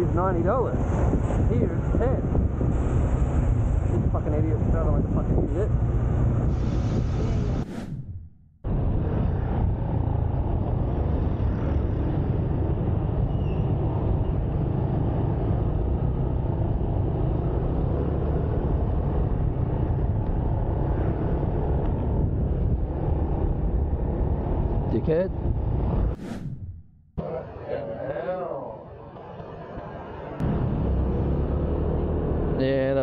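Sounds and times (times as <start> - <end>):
wind and road noise: 0.0 - 33.0.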